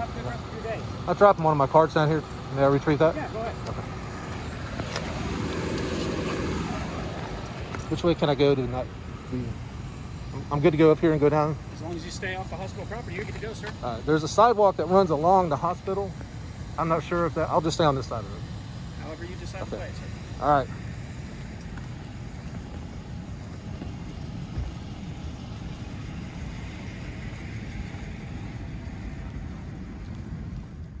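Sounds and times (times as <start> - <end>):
car engine idling: 0.0 - 31.0
low street rumble: 0.0 - 31.0
traffic hiss: 0.0 - 31.0.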